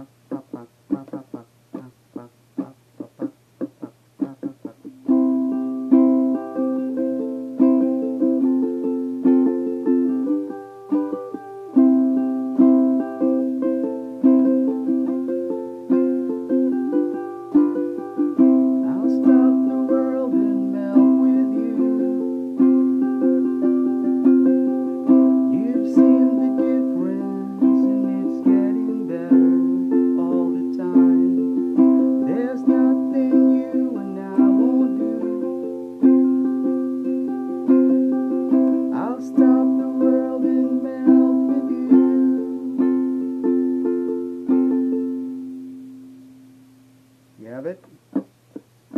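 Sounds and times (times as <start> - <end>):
ukulele strumming: 0.0 - 48.9.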